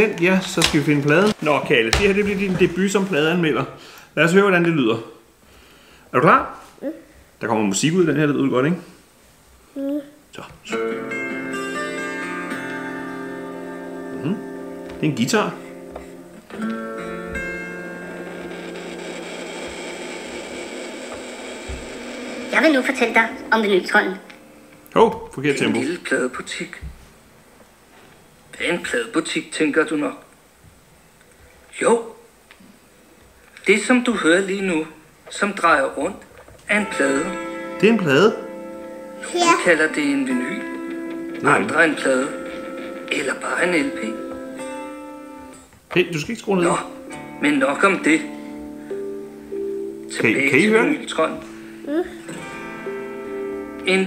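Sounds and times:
record hiss: 0.0s - 54.0s
plucked guitar chords: 10.7s - 19.8s, 36.8s - 45.6s, 46.9s - 53.9s.

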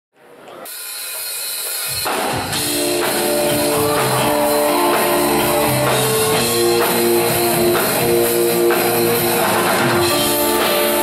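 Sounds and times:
crowd and stage hall ambience: 0.2s - 11.0s
rock band bass and drums: 1.5s - 11.0s.

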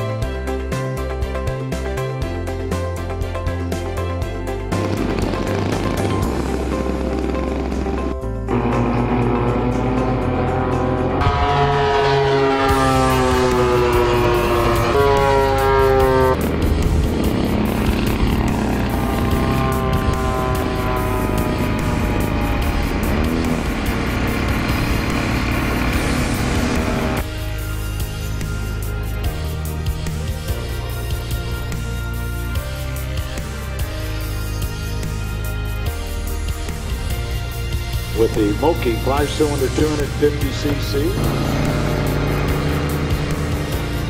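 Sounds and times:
music with bass beat: 0.0s - 11.7s, 12.5s - 44.0s
model plane engines flying past: 4.7s - 27.4s, 38.2s - 44.0s.

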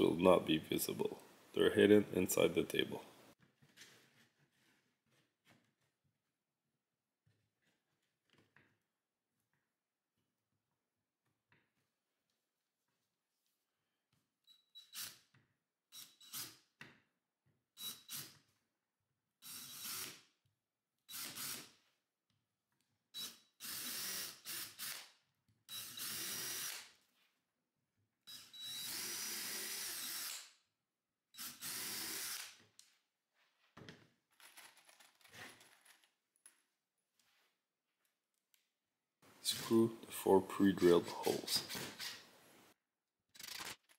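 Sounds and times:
cordless drill boring into wood: 14.8s - 15.2s, 19.4s - 20.2s, 21.1s - 21.7s, 23.2s - 25.1s, 25.7s - 27.0s, 28.3s - 30.5s, 31.4s - 32.6s.

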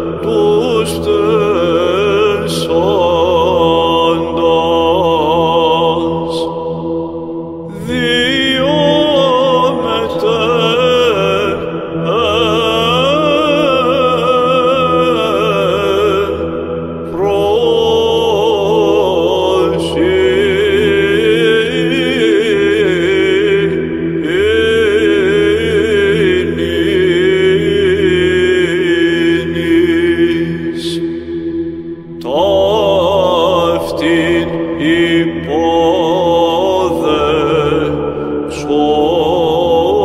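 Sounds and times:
slow sung chant melody: 0.0s - 40.0s
steady held drone: 0.0s - 40.0s.

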